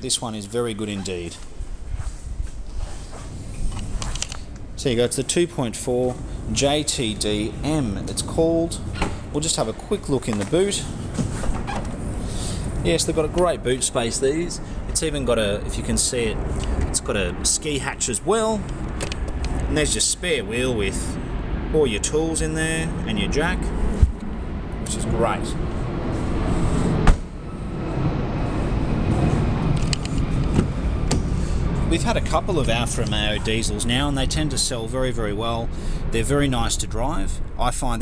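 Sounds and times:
steady low rumble: 0.0 - 38.0.

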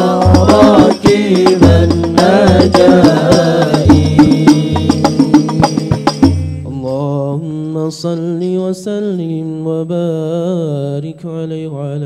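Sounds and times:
frame drum strikes: 0.0 - 6.9
man chanting over a microphone: 0.0 - 12.0.

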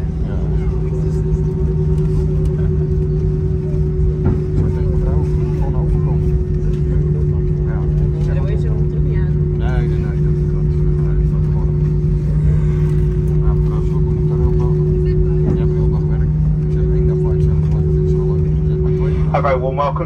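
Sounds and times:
airplane cabin rumble: 0.0 - 20.0
faint passenger voices: 0.0 - 20.0.

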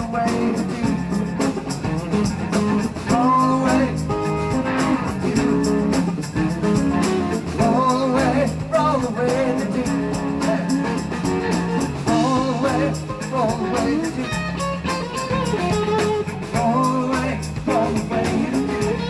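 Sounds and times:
bass guitar: 0.0 - 19.0
drums: 0.0 - 19.0
electric guitar: 0.0 - 19.0.

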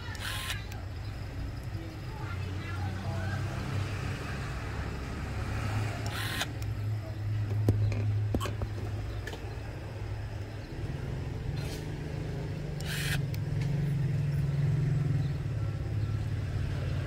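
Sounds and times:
electric screwdriver spinning: 0.0 - 0.7, 6.0 - 6.5, 12.8 - 13.2.

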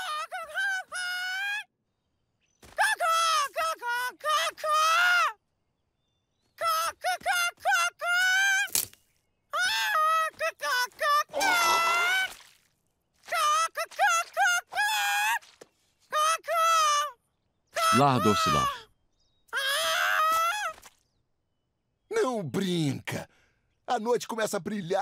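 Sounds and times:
cartoon voice chirping: 11.0 - 12.4, 17.8 - 18.9.

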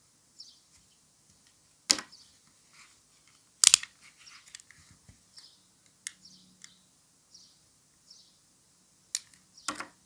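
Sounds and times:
sparrow chirp: 0.4 - 0.7, 5.4 - 8.4.

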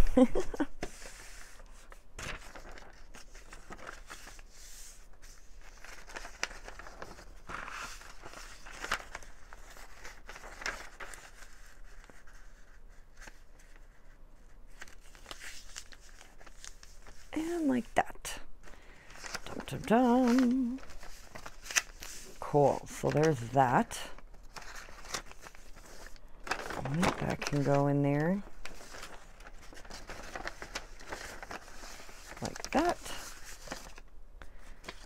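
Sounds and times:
paper rustling and crinkling: 0.0 - 17.9, 18.6 - 35.0.

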